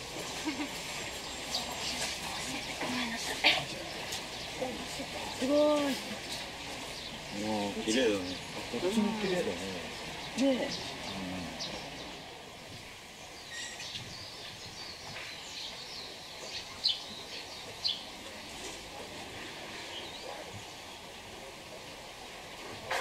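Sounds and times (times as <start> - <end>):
outdoor background noise: 0.0 - 23.0
small birds chirping: 0.0 - 23.0.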